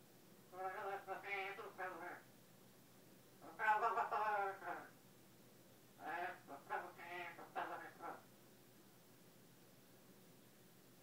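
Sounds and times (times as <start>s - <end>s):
parrot mimicking speech: 0.5s - 2.3s, 3.4s - 5.0s, 6.0s - 8.3s.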